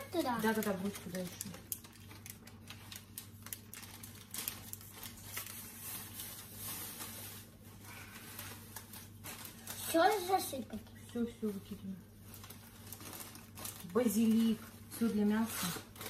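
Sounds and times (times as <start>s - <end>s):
paper sachet tearing and crinkling: 0.0s - 10.6s, 11.6s - 16.0s.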